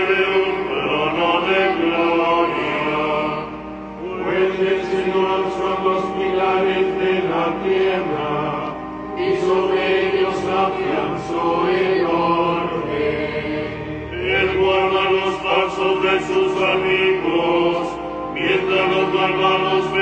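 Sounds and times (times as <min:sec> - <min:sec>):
voices singing liturgical chant: 0:00.0 - 0:20.0.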